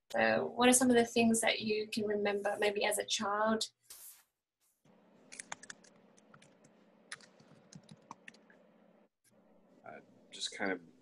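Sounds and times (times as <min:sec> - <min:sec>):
keyboard typing clicks: 0:05.4 - 0:08.5.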